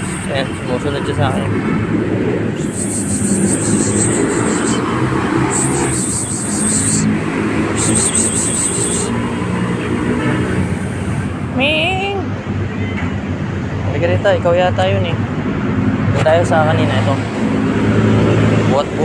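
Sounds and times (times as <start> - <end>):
street traffic: 0.0 - 19.0
high pulsing trills: 2.6 - 9.2
cat meowing: 12.6 - 13.2.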